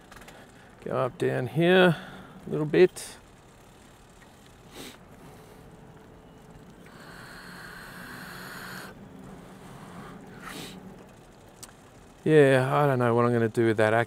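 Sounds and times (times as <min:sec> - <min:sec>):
electric motor hum and whine: 0:00.0 - 0:13.7.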